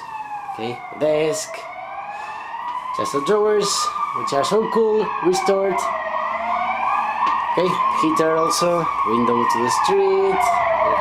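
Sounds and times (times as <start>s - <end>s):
emergency vehicle siren wailing: 0.0s - 11.0s.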